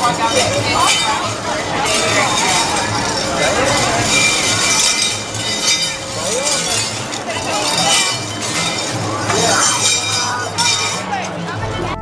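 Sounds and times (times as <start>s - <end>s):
swing ride chains clinking: 0.0s - 11.6s
people's voices: 0.0s - 12.0s.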